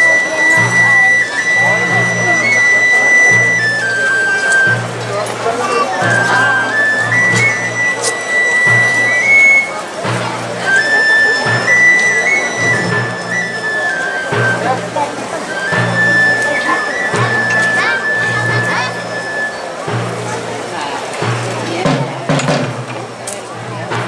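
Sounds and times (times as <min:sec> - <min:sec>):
band playing slow funeral march: 0:00.0 - 0:24.0
crowd voices: 0:00.0 - 0:24.0.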